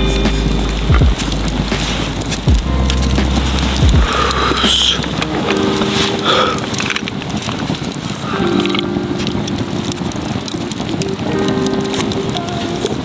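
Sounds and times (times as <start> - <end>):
campfire crackling: 0.0 - 13.0
music of long held notes: 0.0 - 13.0.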